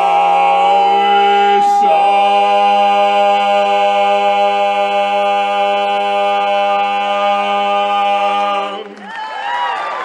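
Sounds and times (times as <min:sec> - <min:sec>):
male voices singing a chord: 0:00.0 - 0:09.1.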